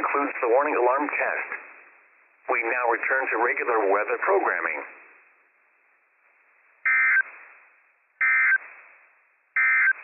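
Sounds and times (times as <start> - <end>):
faint radio hiss: 0.0 - 10.0
buzzy two-tone data chirps: 6.9 - 7.3, 8.2 - 8.6, 9.6 - 10.0.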